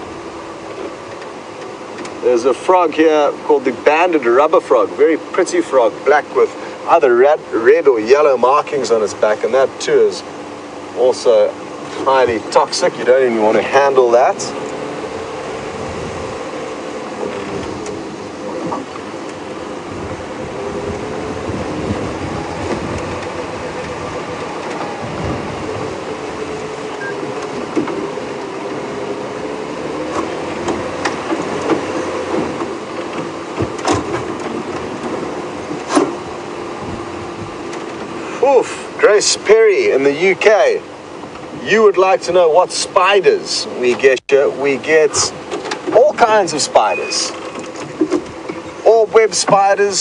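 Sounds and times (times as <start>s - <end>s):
vehicle engine running: 0.0s - 42.0s.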